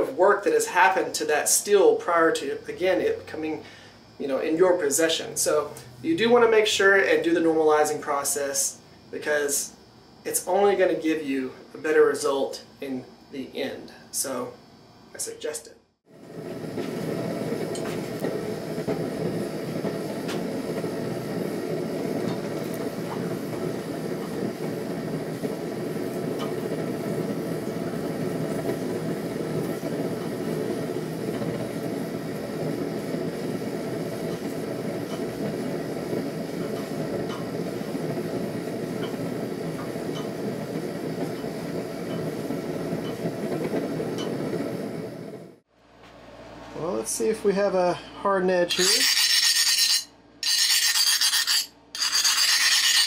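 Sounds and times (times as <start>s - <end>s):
gas forge burner roaring: 0.0s - 15.3s, 16.0s - 53.0s.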